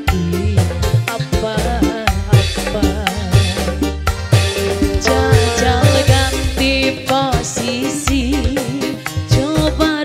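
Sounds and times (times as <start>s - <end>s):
steady drum beat: 2.1s - 7.9s
vibrato melody line: 4.8s - 7.0s.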